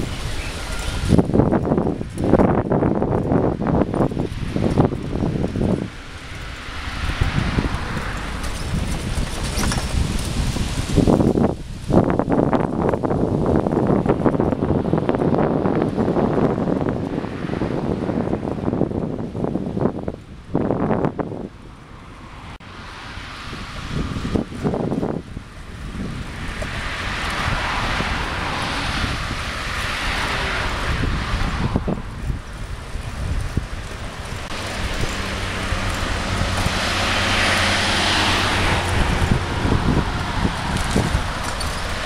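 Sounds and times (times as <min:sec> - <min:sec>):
road traffic: 0:00.0 - 0:42.0
wind buffeting microphone: 0:00.0 - 0:42.0.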